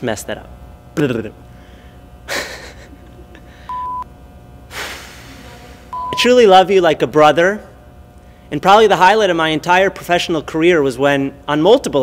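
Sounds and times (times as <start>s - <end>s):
short electronic beep: 3.7s - 4.1s, 5.9s - 6.3s
sharp breath: 4.7s - 5.9s.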